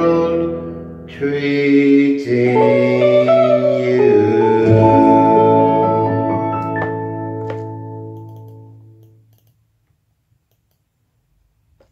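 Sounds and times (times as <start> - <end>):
backing track chord: 2.3 - 9.0
faint clicks: 8.2 - 9.6, 10.4 - 10.9.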